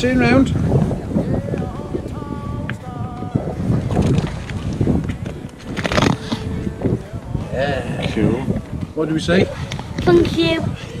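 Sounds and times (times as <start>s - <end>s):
voices: 0.0s - 11.0s
wind buffeting microphone: 0.0s - 11.0s.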